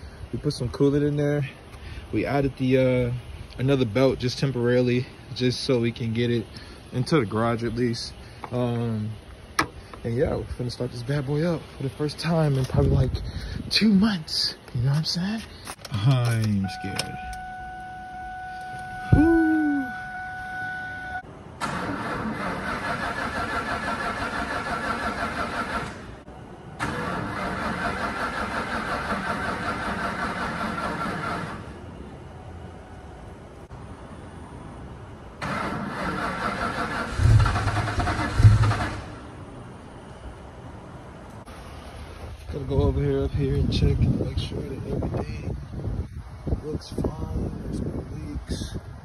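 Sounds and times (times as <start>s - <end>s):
steady warning tone: 16.4s - 21.2s
starter cranking engine: 21.6s - 26.1s, 26.8s - 31.7s, 35.4s - 39.2s.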